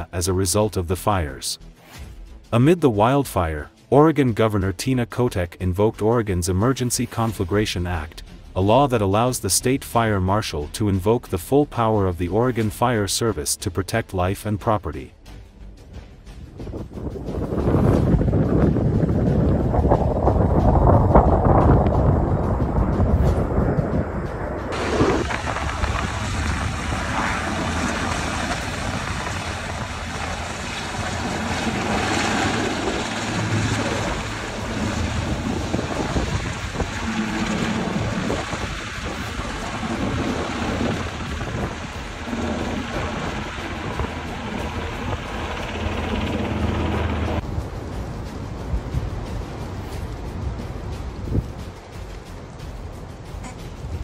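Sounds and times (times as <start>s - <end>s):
wind buffeting microphone: 16.3s - 54.0s.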